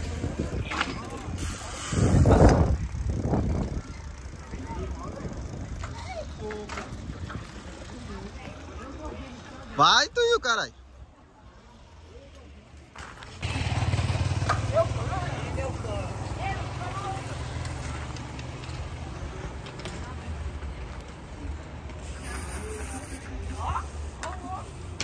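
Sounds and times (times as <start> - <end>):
wind buffeting microphone: 0.0 - 7.6
crowd chatter: 0.0 - 25.0.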